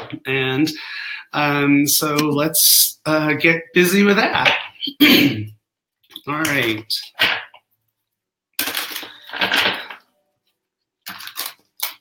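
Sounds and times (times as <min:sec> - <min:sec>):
cards shuffling: 0:11.1 - 0:12.0.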